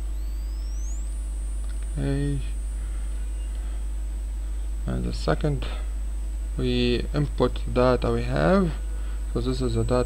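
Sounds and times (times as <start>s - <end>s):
high-pitched electronic whine: 0.0s - 10.0s
low electrical hum: 0.0s - 10.0s.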